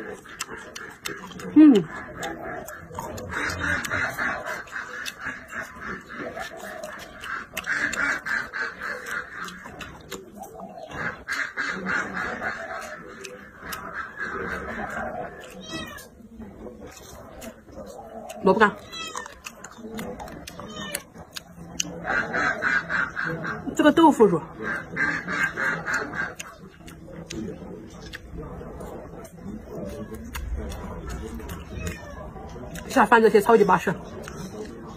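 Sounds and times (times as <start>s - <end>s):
chewing crisp vegetables: 0.0s - 34.9s
wet mouth sounds: 0.0s - 34.9s.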